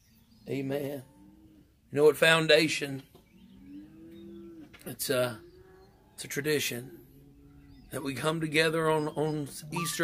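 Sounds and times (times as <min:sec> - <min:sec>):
cow mooing: 0:03.5 - 0:08.0.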